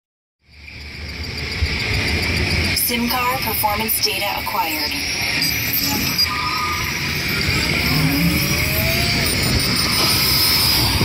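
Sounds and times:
high-pitched buzzing drone: 0:00.6 - 0:11.0.

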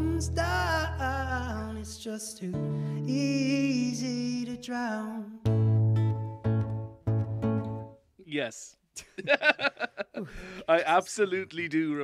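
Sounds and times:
acoustic guitar chords strummed: 0:05.4 - 0:08.0.

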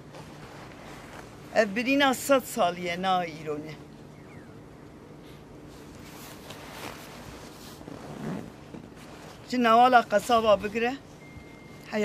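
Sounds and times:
soft rustling on microphone: 0:00.0 - 0:02.7, 0:05.2 - 0:12.0
faint low hum: 0:00.0 - 0:12.0.

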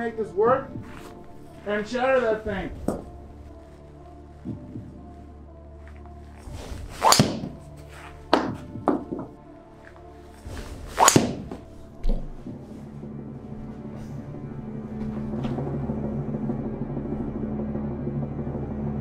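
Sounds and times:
background music: 0:00.0 - 0:19.0
golf ball thunking against screen: 0:06.7 - 0:07.6, 0:10.6 - 0:12.3.

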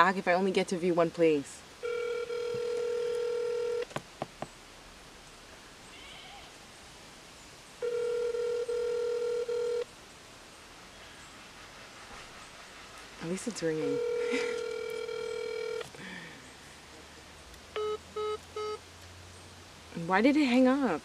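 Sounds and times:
telephone ringback tone: 0:01.8 - 0:03.8, 0:07.8 - 0:09.8, 0:13.8 - 0:15.9, 0:17.8 - 0:18.8.

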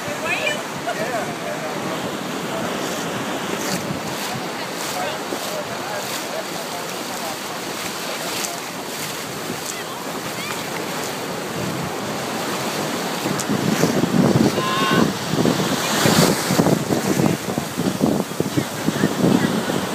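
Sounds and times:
wind buffeting microphone: 0:00.0 - 0:06.2, 0:07.0 - 0:19.9
faint voices: 0:00.0 - 0:19.9
ocean surf washing: 0:00.0 - 0:19.9.

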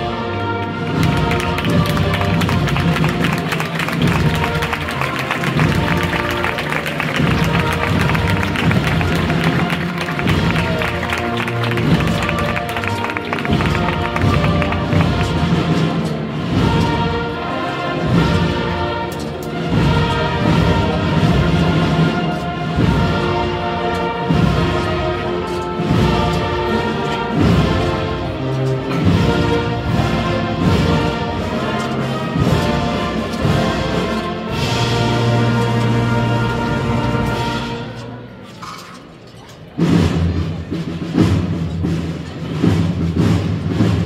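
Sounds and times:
brass band playing a march: 0:00.0 - 0:38.9, 0:39.7 - 0:44.0
steady drum beat: 0:00.9 - 0:17.2.

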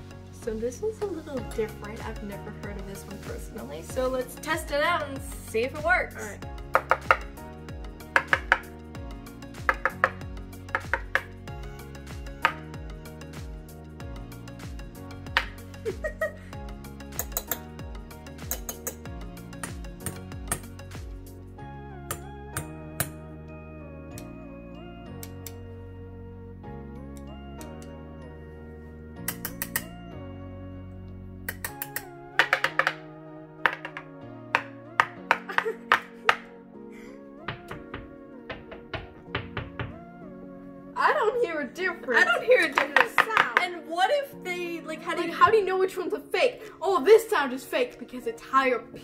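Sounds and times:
background music: 0:00.0 - 0:49.0.

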